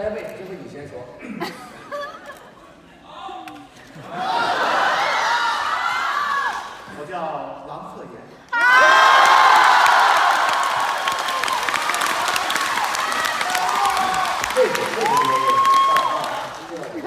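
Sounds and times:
shouted calls and whoops: 8.5 - 11.9, 12.6 - 16.5
audience applauding: 8.7 - 17.0.

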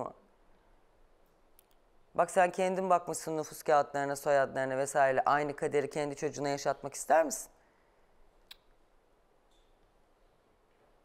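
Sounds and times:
faint small clicks: 1.3 - 1.9, 8.4 - 8.8
person speaking: 2.2 - 7.5.

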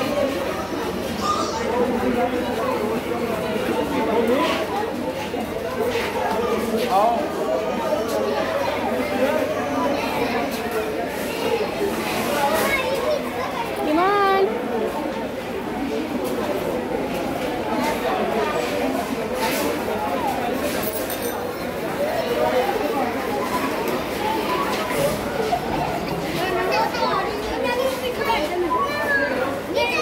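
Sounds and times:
children chattering: 0.0 - 30.0
child's high drawn-out call: 1.2 - 1.8.

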